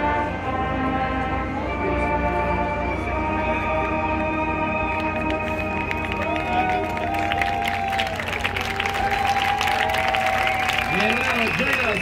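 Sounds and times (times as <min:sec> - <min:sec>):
crowd applauding and cheering: 0:04.9 - 0:12.0.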